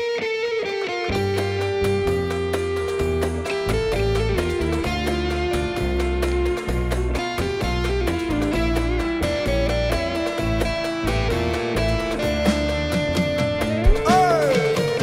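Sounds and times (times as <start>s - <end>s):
electric guitar: 0.0s - 15.0s
bass: 1.1s - 15.0s
drums: 1.1s - 15.0s
keyboard: 1.1s - 15.0s.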